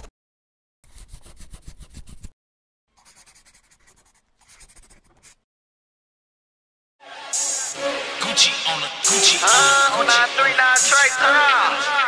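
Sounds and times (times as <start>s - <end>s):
eraser rubbing on paper: 0.8s - 2.3s, 3.0s - 5.4s
pencil writing on paper: 0.8s - 2.3s, 3.0s - 5.4s.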